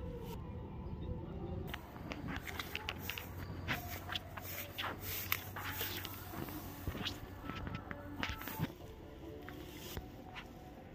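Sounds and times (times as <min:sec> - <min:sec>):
footsteps crunching dry grass: 0:01.7 - 0:10.9.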